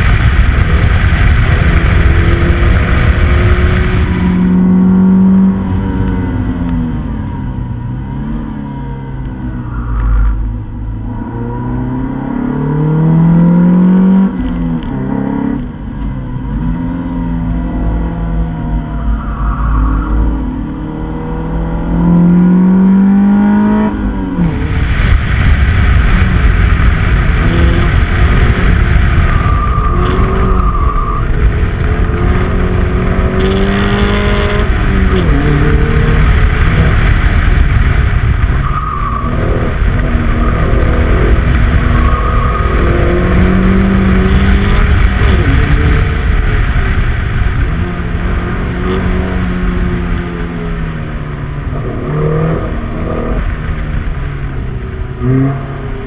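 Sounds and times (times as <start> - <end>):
wind rush over microphone: 0.0 - 7.6, 23.3 - 55.5
car engine revving: 0.0 - 56.0.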